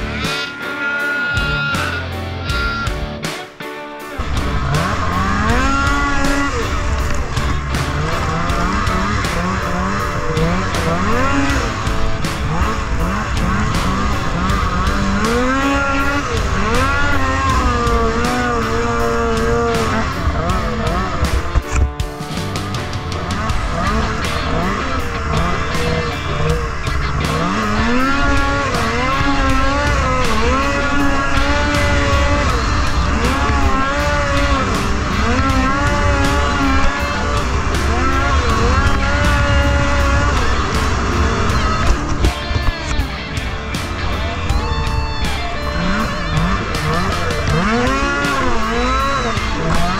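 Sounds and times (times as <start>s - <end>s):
snowmobile engine revving: 0.0s - 3.4s, 4.1s - 49.9s.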